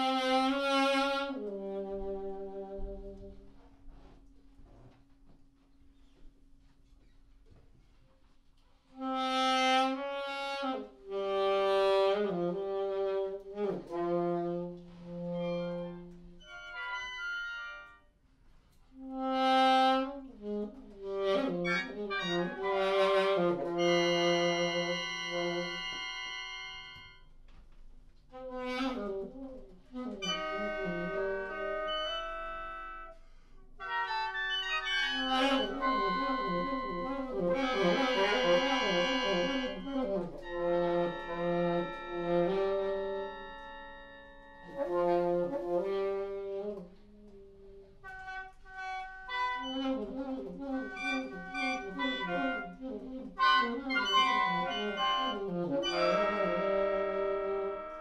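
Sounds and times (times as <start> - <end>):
woodwinds playing: 0.0 - 5.4, 8.9 - 18.2, 18.8 - 27.5, 28.2 - 58.0
alto saxophone: 0.0 - 58.0.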